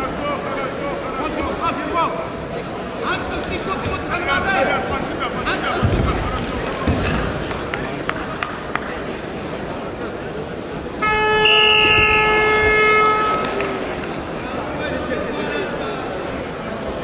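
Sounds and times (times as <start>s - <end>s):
crowd noise: 0.0s - 17.0s
loud timing buzzer: 11.0s - 13.7s.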